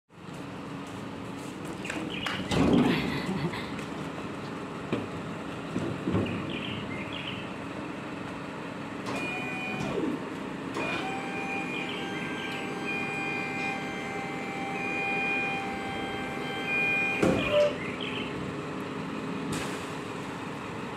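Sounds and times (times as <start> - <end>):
hydraulic pump motor whine: 9.0 - 18.2
tail-lift platform clunk: 16.6 - 17.9.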